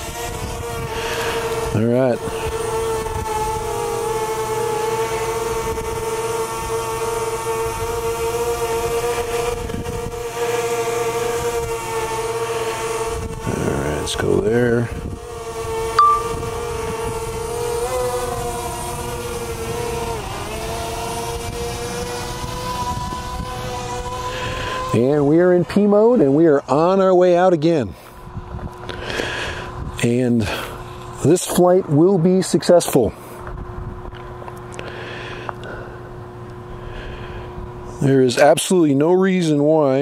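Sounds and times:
drone propellers whining: 0.0s - 14.4s, 15.1s - 26.4s
short high blip: 16.0s - 16.5s.

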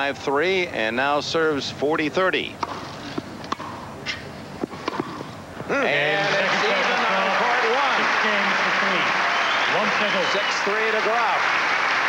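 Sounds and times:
tennis ball struck by rackets: 2.6s - 3.8s, 4.6s - 5.2s.

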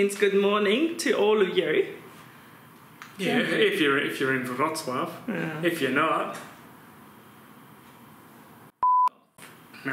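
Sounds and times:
short electronic beep: 8.8s - 9.1s.

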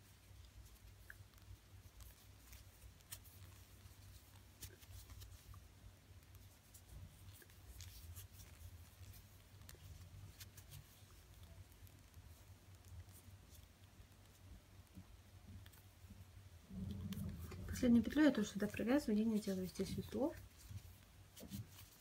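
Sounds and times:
low steady hum: 0.0s - 22.0s
crochet hook clicks and rustles: 0.1s - 15.9s.

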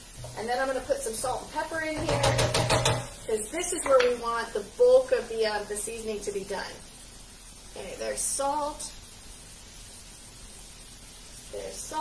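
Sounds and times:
onions sizzling in a frying pan: 0.0s - 12.0s.

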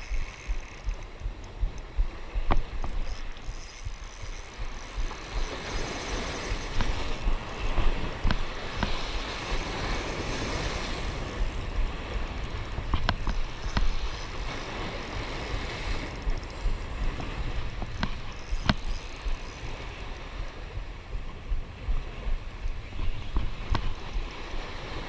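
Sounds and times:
spinning reel being cranked: 0.0s - 1.9s, 2.6s - 20.5s
sharp clicks: 0.0s - 10.5s, 12.4s - 14.6s, 17.6s - 20.6s
wind on microphone: 0.0s - 25.0s
waves washing against rocks: 2.2s - 20.4s.

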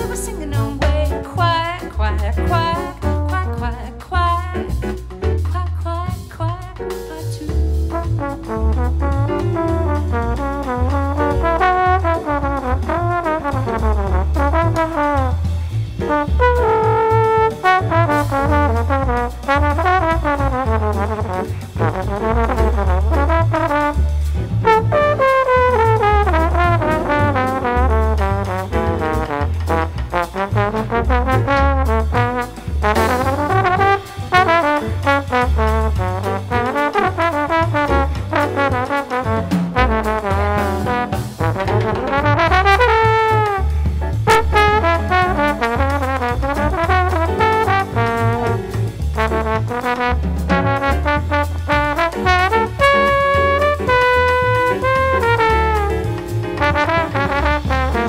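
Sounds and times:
drums: 0.0s - 58.0s
slide trombone jazz solo: 0.0s - 58.0s
upright bass: 0.0s - 58.0s.

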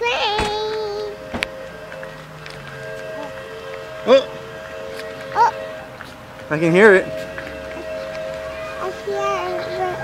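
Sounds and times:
distant train whistle chord: 0.9s - 10.0s.

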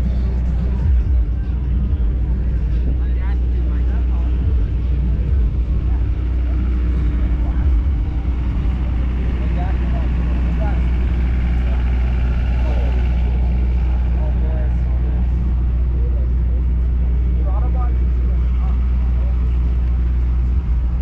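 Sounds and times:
car engine idling: 0.0s - 21.0s
faint crowd voices: 0.0s - 21.0s.

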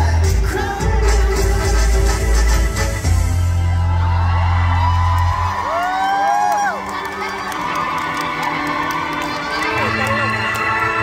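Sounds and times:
concert crowd cheering and screaming: 3.0s - 11.0s.

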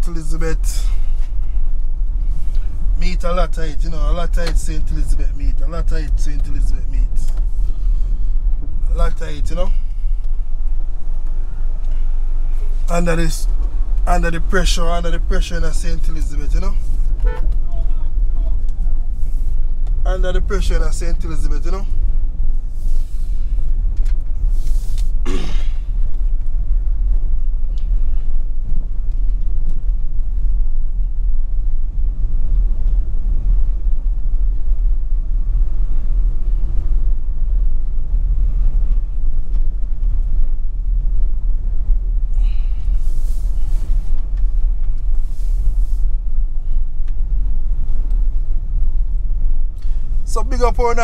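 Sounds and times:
hissing wind rushes: 21.8s - 50.3s
wind buffeting microphone: 21.8s - 51.0s.

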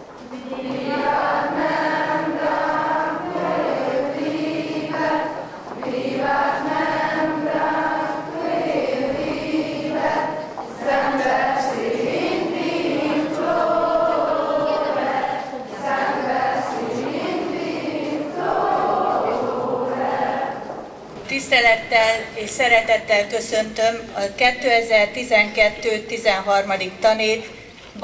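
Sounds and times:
choir singing: 0.2s - 21.1s.

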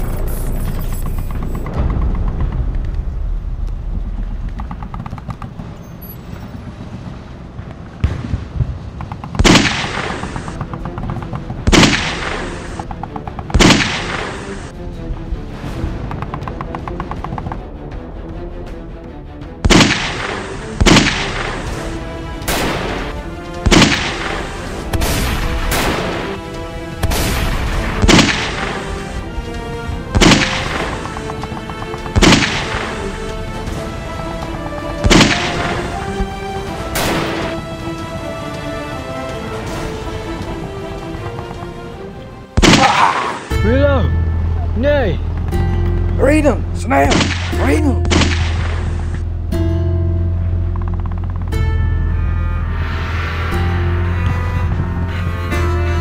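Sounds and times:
background music: 6.2s - 56.0s
echoing rifle shots: 35.0s - 35.8s.

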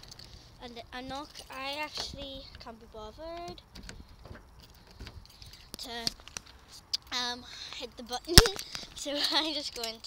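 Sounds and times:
girl's voice: 0.6s - 3.6s, 5.7s - 6.2s, 7.0s - 10.0s.

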